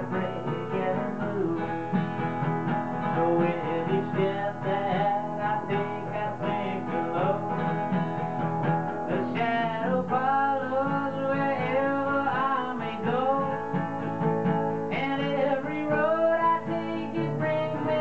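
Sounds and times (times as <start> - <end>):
man singing: 0.0 - 8.2, 8.9 - 14.2, 14.9 - 18.0
strummed acoustic guitar: 0.0 - 18.0.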